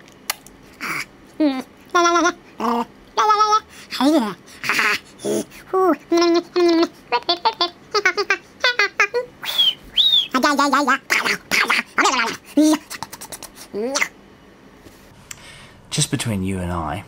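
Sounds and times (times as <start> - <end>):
high vocal squeaks: 0.8 - 14.2
man making warbling vocal noises: 0.8 - 14.2.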